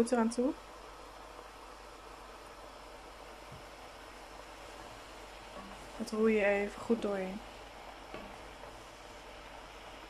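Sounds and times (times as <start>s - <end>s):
mushrooms frying in butter: 0.0s - 10.0s.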